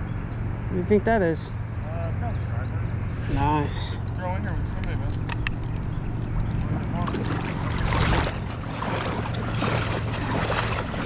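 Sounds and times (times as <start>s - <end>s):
voices: 0.6s - 7.6s
river water sloshing around legs: 3.1s - 11.0s
rush of water: 4.6s - 11.0s.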